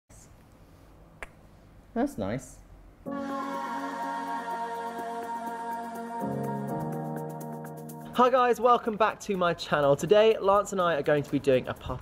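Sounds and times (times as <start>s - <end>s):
man speaking: 8.2s - 12.0s.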